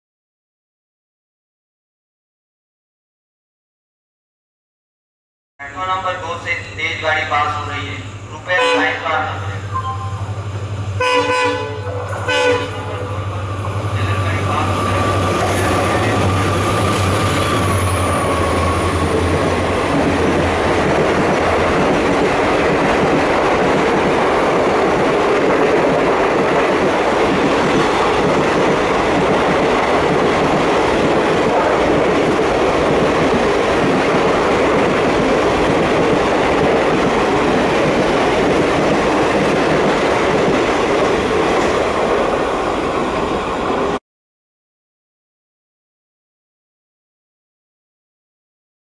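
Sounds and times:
diesel locomotive engine hum: 5.6s - 44.0s
train coaches rushing past: 5.7s - 44.0s
train horn blast: 8.5s - 9.0s, 11.0s - 13.1s.

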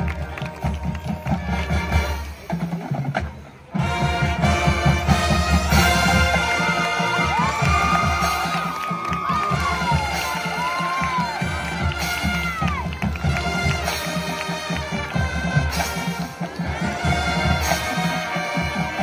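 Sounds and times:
marching band playing: 0.0s - 19.0s
crowd cheering and shouting: 5.6s - 19.0s.

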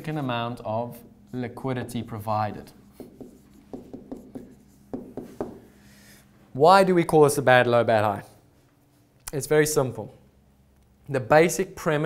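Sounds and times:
pen tapping on whiteboard screen: 3.0s - 5.7s.

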